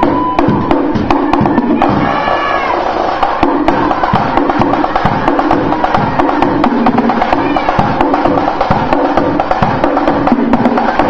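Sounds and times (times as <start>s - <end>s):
percussion beat: 0.0s - 11.0s.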